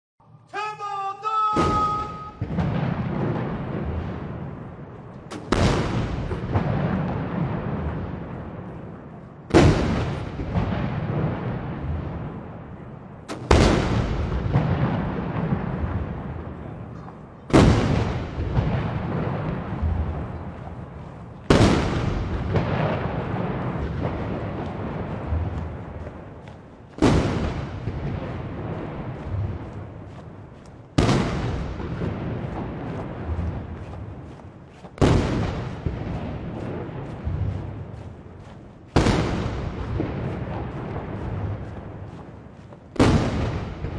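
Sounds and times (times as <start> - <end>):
echoing rumble: 1.6 - 43.9.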